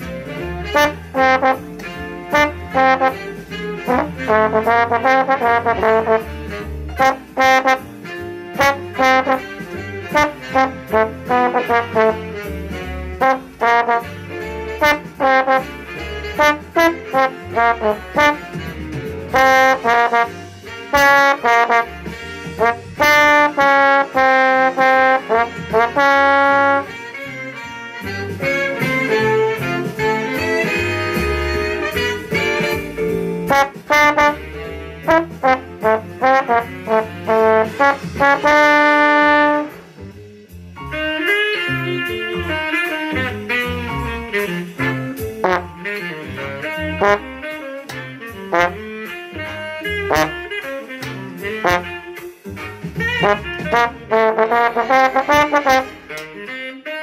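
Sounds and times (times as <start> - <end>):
big band brass section: 0.0 - 40.2, 40.8 - 57.0
bass and drums: 0.0 - 57.0
trombone playing: 0.0 - 57.0.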